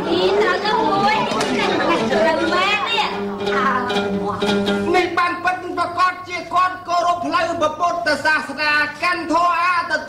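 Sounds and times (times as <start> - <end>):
people laughing: 0.0 - 3.1
people talking over one another: 0.0 - 8.7.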